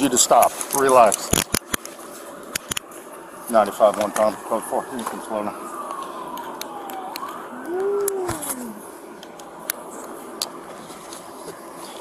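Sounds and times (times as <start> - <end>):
police siren wailing: 3.5 - 9.6.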